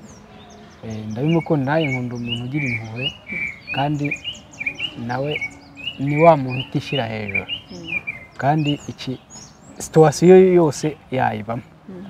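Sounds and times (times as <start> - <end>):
small birds chirping: 0.0 - 12.0
man speaking: 0.8 - 4.2, 5.0 - 5.4, 6.0 - 7.5, 8.4 - 9.2, 9.8 - 11.7.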